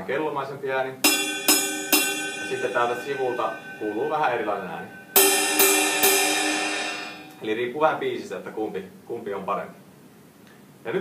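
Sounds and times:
ride cymbal strikes ringing: 1.0s - 7.8s.

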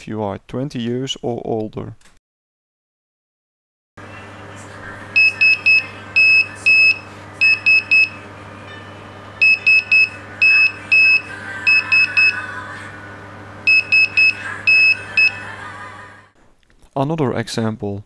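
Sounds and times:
buzzer beeping morse code: 5.2s - 8.2s, 9.4s - 12.4s, 13.6s - 15.4s.

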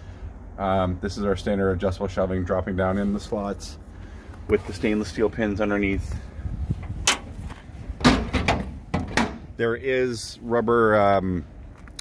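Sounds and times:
metal compartment door shutting: 6.8s - 9.5s.

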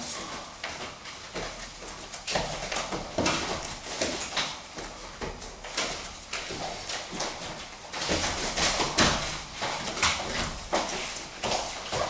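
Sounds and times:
bare feet thudding on mats: 0.0s - 12.0s.

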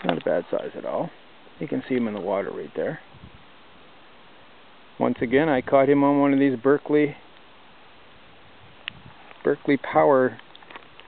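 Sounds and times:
brook running over pebbles: 8.7s - 11.0s.

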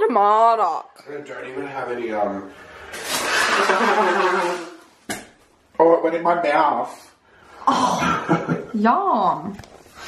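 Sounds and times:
man blowing nose: 2.8s - 5.0s.

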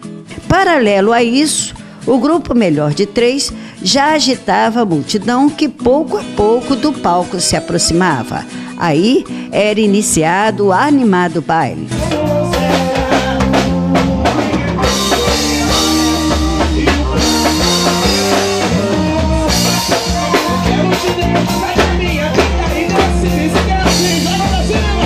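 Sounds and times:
live band playing dance music: 11.8s - 25.0s.

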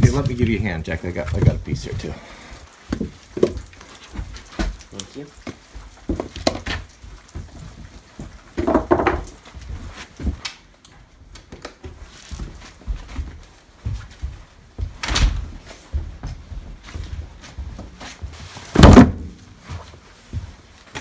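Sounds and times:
firewood knocking and thudding: 0.0s - 9.6s, 18.6s - 19.6s
footsteps: 0.0s - 21.0s
heavy wood clunks: 8.6s - 9.3s, 18.7s - 19.4s.

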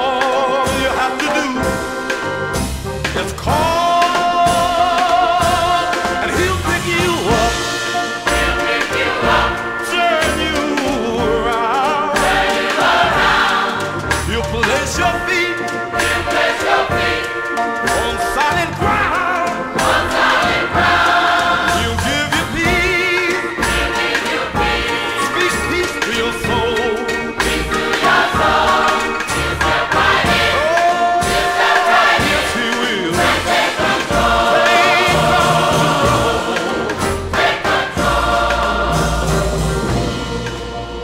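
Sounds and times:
gospel choir singing: 0.0s - 41.0s
instrumental backing: 0.0s - 41.0s.

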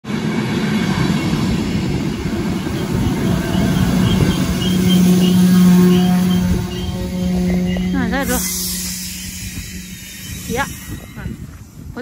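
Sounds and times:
electric train rumbling and humming: 0.0s - 12.0s.

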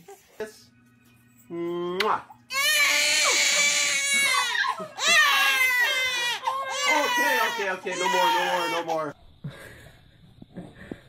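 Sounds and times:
infant crying loudly: 2.5s - 9.1s.

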